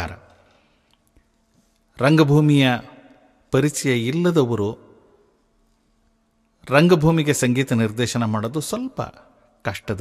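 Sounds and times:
man narrating: 0:02.0 - 0:02.9, 0:03.6 - 0:04.8, 0:06.7 - 0:10.0.

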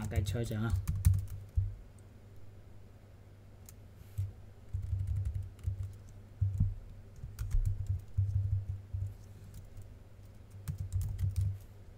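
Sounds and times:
keyboard typing: 0:00.0 - 0:01.8, 0:03.6 - 0:11.6.

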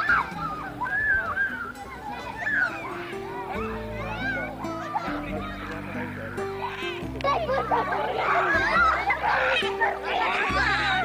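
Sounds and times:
children shouting at play: 0:00.0 - 0:11.0.

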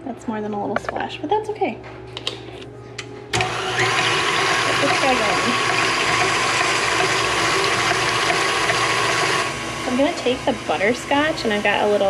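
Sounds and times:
stand mixer whipping cream: 0:03.4 - 0:12.0.

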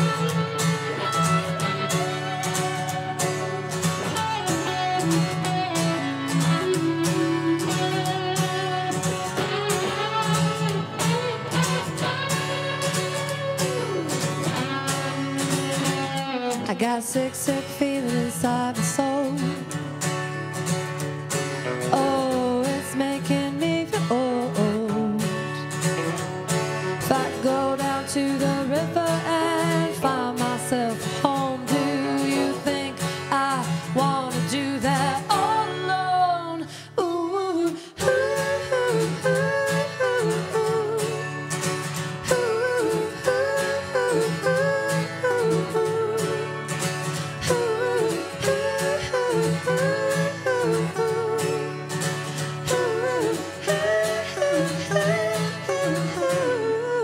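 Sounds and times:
person singing: 0:00.0 - 0:20.1, 0:21.5 - 0:57.0
acoustic guitar: 0:00.0 - 0:57.0.

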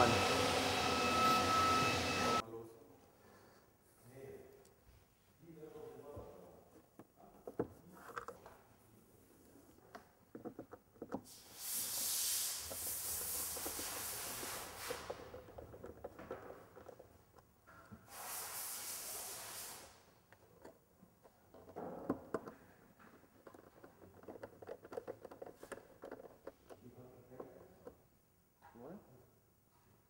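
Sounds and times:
pressurised air hissing: 0:11.3 - 0:15.3, 0:18.1 - 0:20.0.

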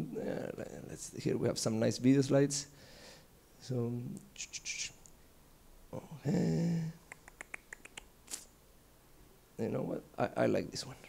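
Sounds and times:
short breathy hiss: 0:02.7 - 0:03.3, 0:08.2 - 0:08.6.

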